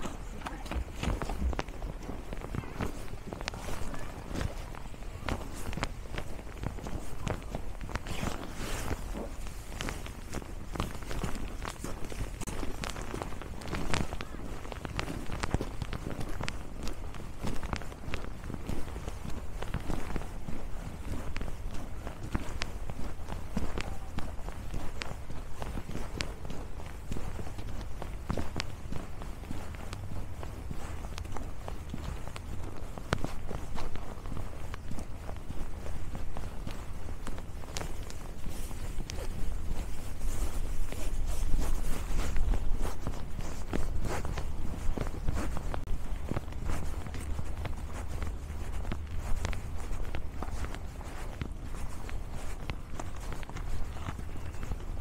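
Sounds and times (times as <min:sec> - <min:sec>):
footsteps crunching on snow: 0:00.0 - 0:55.0.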